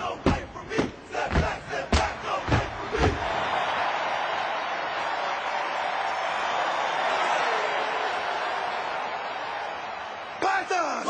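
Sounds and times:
feet stomping in rhythm: 0:00.0 - 0:03.9
crowd cheering: 0:00.0 - 0:11.0
people shouting: 0:00.0 - 0:11.0.

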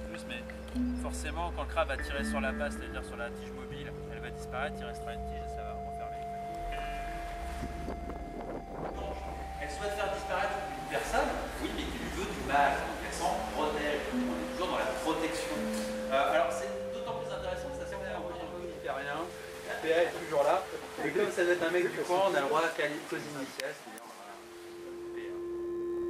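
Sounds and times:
person speaking: 0:00.0 - 0:06.9, 0:08.9 - 0:22.5
steady hum: 0:00.0 - 0:21.6
wind noise on microphone: 0:05.8 - 0:13.0.

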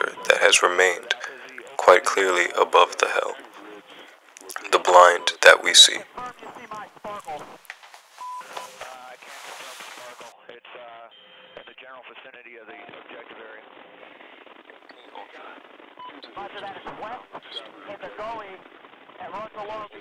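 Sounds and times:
faint voices over radio: 0:00.0 - 0:07.6, 0:08.4 - 0:11.1, 0:15.0 - 0:18.6
short steady beeps: 0:08.2 - 0:08.8.

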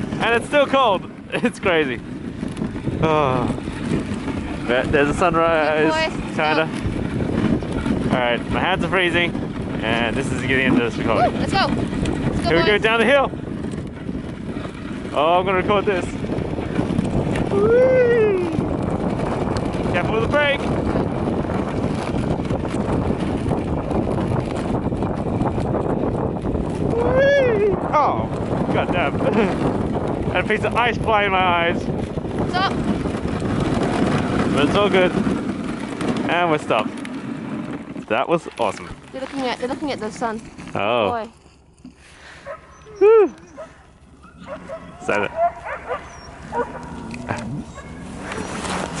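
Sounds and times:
wind buffeting microphone: 0:00.0 - 0:49.0
dogs barking and whining: 0:42.4 - 0:48.7.

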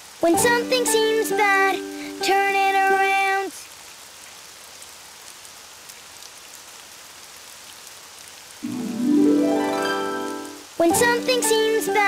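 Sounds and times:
steady rain patter: 0:00.0 - 0:12.0
rain drop ticks: 0:09.6 - 0:12.0.

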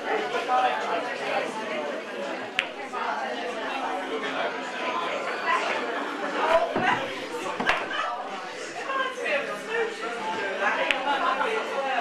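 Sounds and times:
people chattering: 0:00.0 - 0:12.0
knocks: 0:06.5 - 0:08.1.

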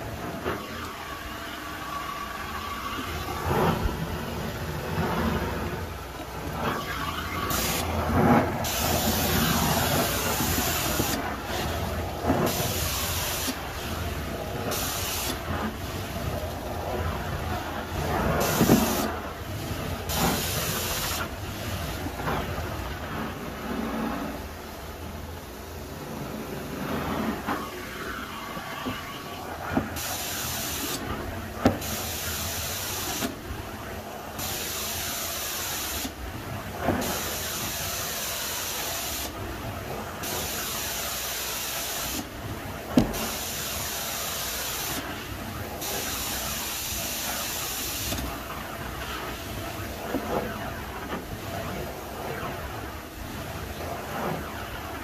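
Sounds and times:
extraction wand suction: 0:00.4 - 0:16.5
spray jet hissing: 0:06.8 - 0:14.0, 0:14.7 - 0:16.2, 0:18.4 - 0:19.1, 0:30.0 - 0:31.0, 0:34.4 - 0:36.2, 0:37.0 - 0:39.4.

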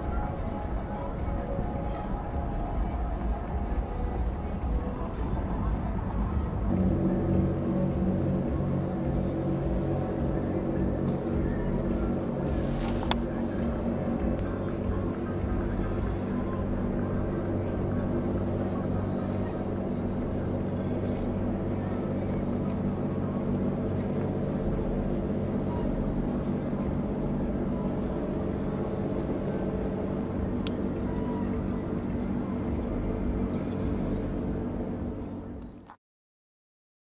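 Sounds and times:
propeller wash rushing: 0:00.0 - 0:35.3
ship machinery low hum: 0:00.0 - 0:35.9.

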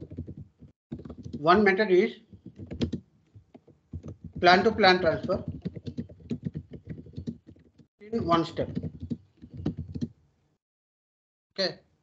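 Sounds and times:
typing on computer keyboard: 0:00.0 - 0:10.2.

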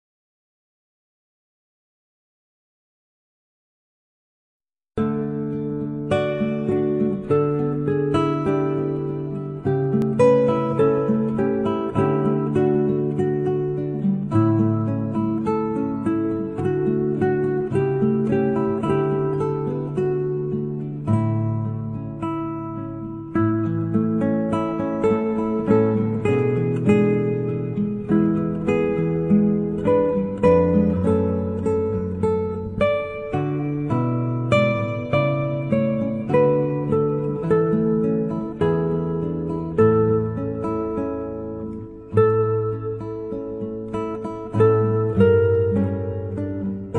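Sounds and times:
plucked acoustic guitar: 0:05.0 - 0:46.9.

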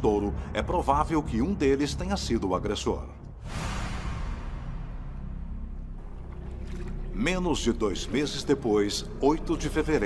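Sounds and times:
low rumbling drone: 0:03.3 - 0:10.0.

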